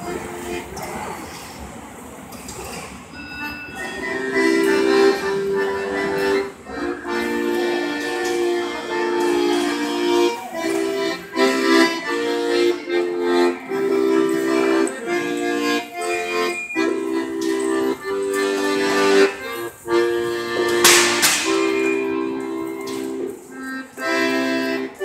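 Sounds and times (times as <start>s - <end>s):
piano accordion playing: 0.0s - 1.1s, 3.2s - 25.0s.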